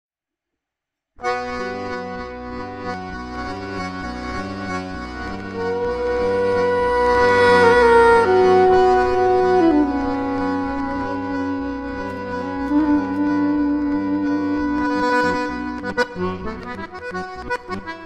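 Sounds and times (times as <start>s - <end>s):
button accordion: 1.2s - 18.0s
soprano saxophone: 5.4s - 16.4s.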